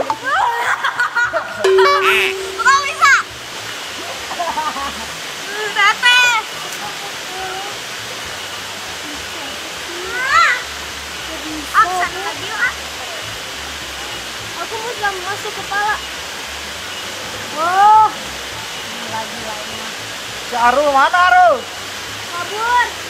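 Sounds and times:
running water rushing: 0.0 - 23.0.

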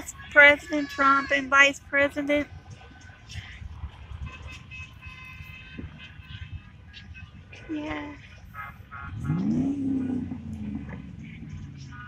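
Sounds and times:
car driving past: 9.1 - 12.0.

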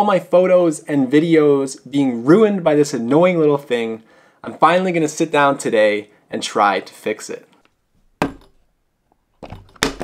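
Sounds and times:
plastic case knocking on wood: 8.2 - 8.5, 9.4 - 10.0.

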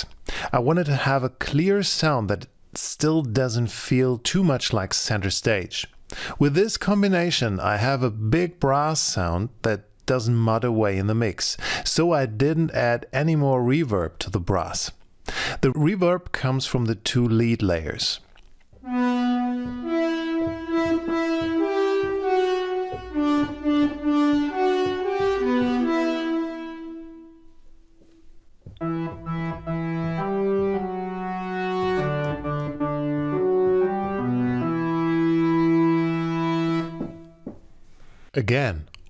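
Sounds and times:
orchestral brass: 18.8 - 27.5, 28.8 - 37.4
brass-like synthesizer melody: 18.8 - 28.2, 28.8 - 37.4.

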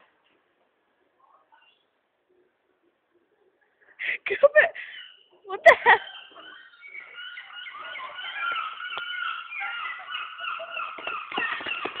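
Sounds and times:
high overlapping animal chirps: 4.8 - 12.0.

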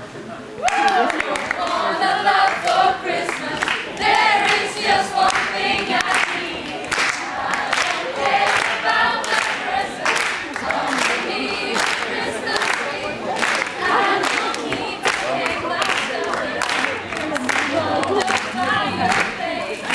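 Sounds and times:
young choir singing: 1.0 - 19.9.

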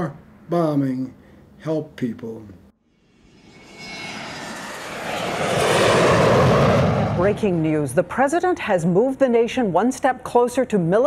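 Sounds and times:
jet engines roaring: 3.1 - 8.2.

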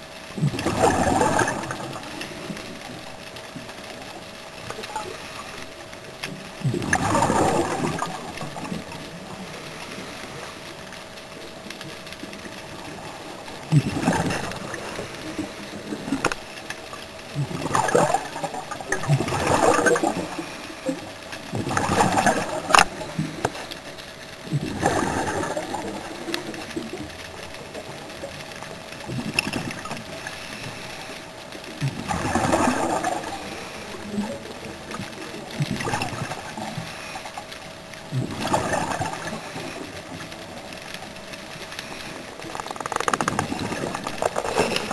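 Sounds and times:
exhaled bubbles gurgling underwater: 0.0 - 44.9
faint steady hum: 0.0 - 44.9.

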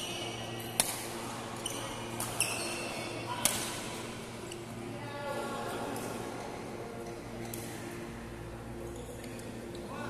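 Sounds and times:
racket hitting shuttlecock: 0.8 - 1.1, 3.4 - 3.7
shoes squeaking on court floor: 1.6 - 3.2.

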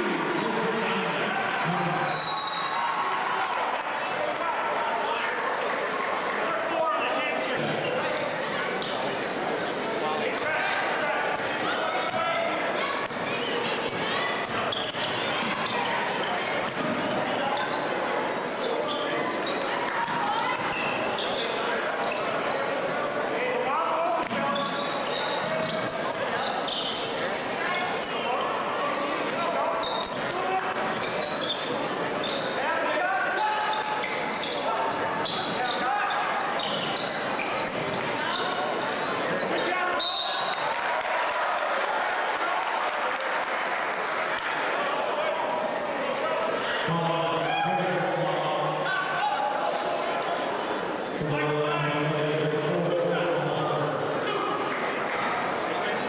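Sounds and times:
crowd chatter: 0.0 - 56.0
referee's whistle: 2.1 - 2.8, 39.9 - 40.7
sneaker squeaks: 2.1 - 2.9, 8.6 - 9.4, 13.0 - 23.2, 24.2 - 28.7, 29.7 - 40.7.

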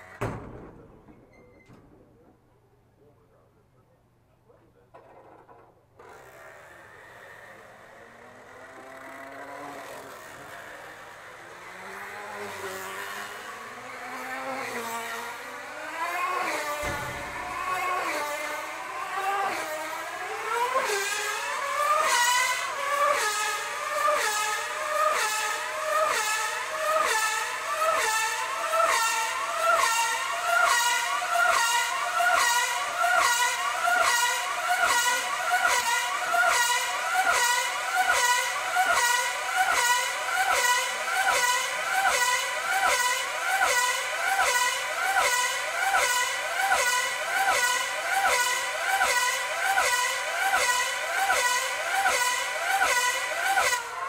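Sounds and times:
high-pitched model engine passing: 6.0 - 54.0.

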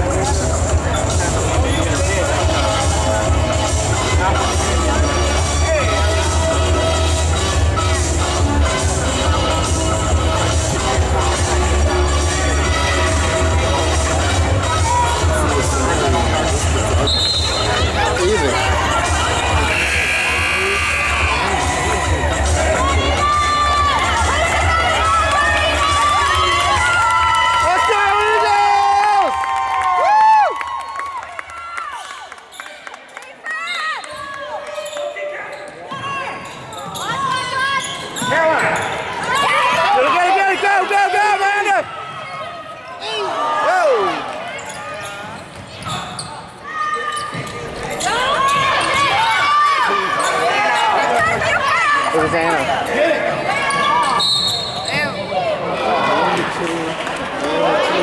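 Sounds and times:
people shouting in a gym: 12.2 - 16.1, 17.0 - 29.8, 33.5 - 56.4.

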